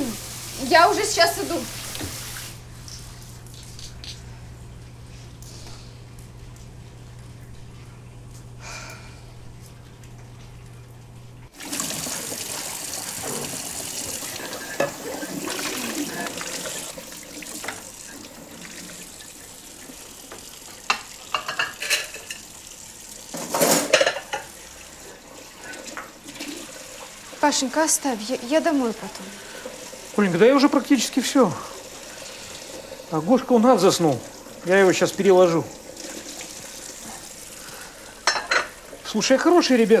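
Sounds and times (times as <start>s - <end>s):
low steady hum: 2.6s - 11.5s
dishes clattering: 14.2s - 16.8s, 20.8s - 22.5s, 23.3s - 24.5s, 38.2s - 38.8s
dishes clinking: 14.3s - 15.5s, 20.9s - 22.5s, 23.3s - 24.5s, 38.2s - 38.8s.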